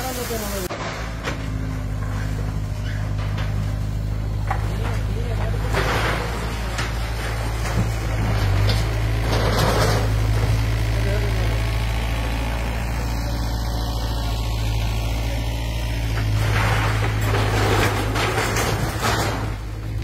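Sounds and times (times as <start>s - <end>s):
excavator diesel engine droning: 0.0s - 20.0s.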